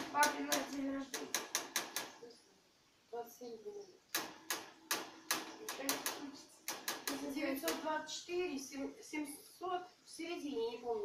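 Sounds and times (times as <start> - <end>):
sharp clicks: 0.0 - 2.2, 4.1 - 7.9.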